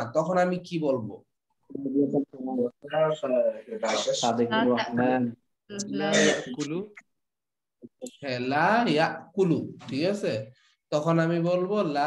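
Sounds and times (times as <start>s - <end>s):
man speaking: 0.0s - 7.1s
muffled voice speaking: 5.8s - 6.9s.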